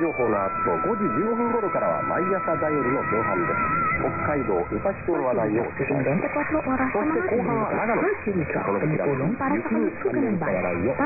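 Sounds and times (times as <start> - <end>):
muffled radio talk: 0.0 - 11.0.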